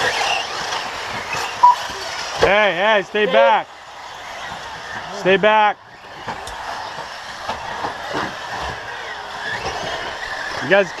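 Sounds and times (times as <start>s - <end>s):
gear and tyre noise: 0.0s - 11.0s
small motor whine: 0.0s - 11.0s.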